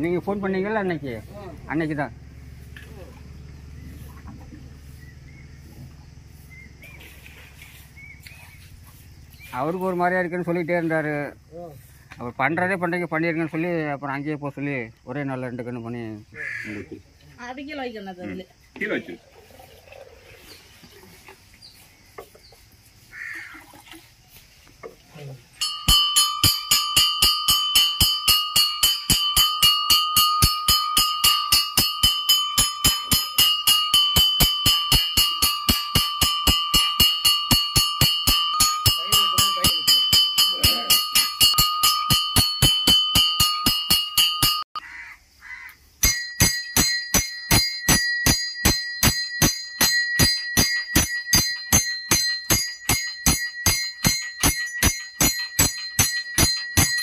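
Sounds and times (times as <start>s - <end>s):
temple bell rung rapidly: 25.6s - 44.7s, 46.0s - 57.0s
higher-pitched bell ringing: 25.6s - 44.8s, 46.0s - 57.0s.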